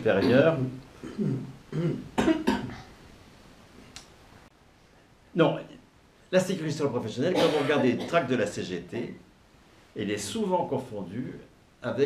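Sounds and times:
man clearing throat: 0.2 - 2.9, 7.3 - 8.3
man coughing: 0.2 - 2.9, 7.3 - 8.3.

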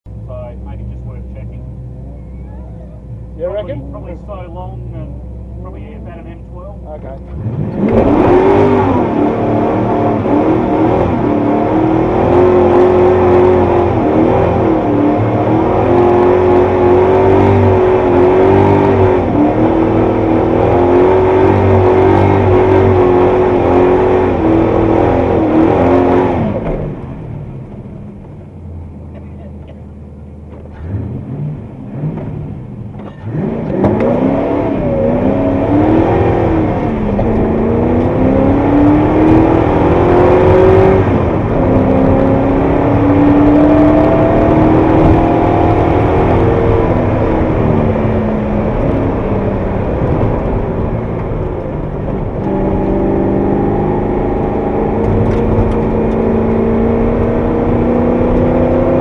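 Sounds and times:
car engine idling: 0.1 - 7.4
car engine running from inside: 0.1 - 59.0.

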